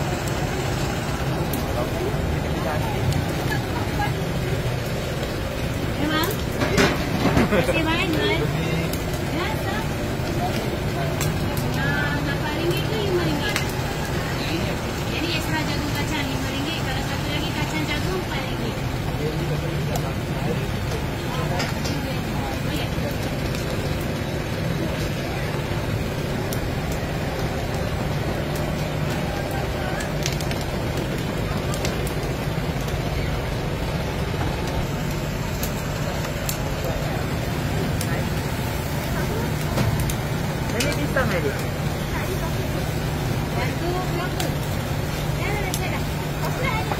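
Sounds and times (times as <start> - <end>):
indistinct background chatter: 0.0 - 46.9.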